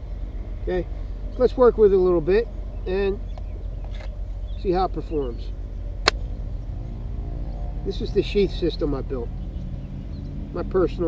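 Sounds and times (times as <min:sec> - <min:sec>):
steady low hum: 0:00.0 - 0:10.2.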